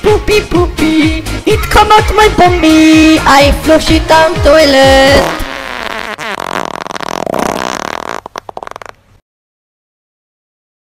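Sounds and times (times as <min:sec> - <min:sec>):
buzzy fart sound effect: 0:05.0 - 0:09.1.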